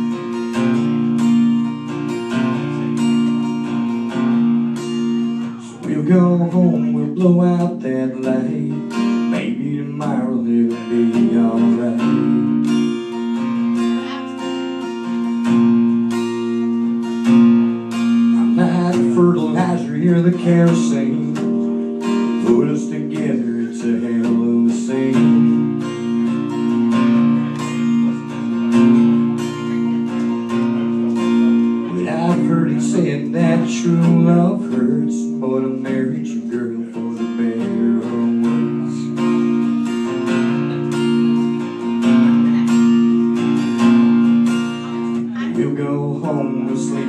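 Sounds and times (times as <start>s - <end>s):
acoustic guitar strumming chords: 0.0s - 47.0s.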